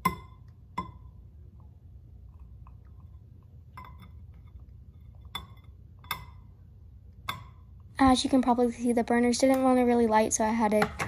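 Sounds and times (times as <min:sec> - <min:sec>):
glass ringing: 0:03.7 - 0:04.2.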